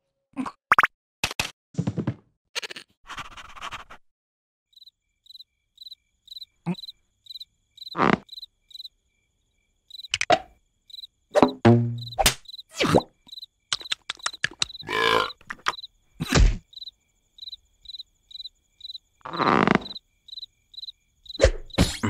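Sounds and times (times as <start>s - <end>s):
crickets chirping: 4.7s - 22.0s.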